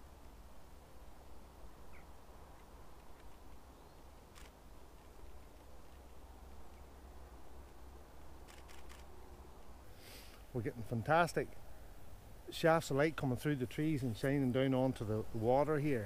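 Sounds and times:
faint bird chirp: 1.2 - 4.5
camera shutter clicking: 4.3 - 4.6, 8.4 - 9.1.

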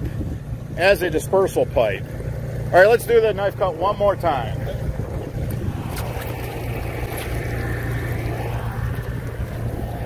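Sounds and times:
low motor drone: 0.0 - 10.0.

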